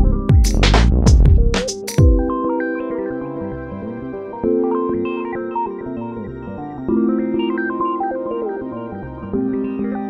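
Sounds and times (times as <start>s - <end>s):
synthesizer chords and melody: 0.0s - 10.0s.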